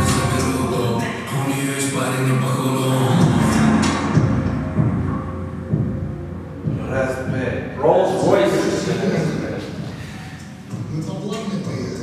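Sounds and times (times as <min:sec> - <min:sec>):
person singing: 0:00.0 - 0:04.4.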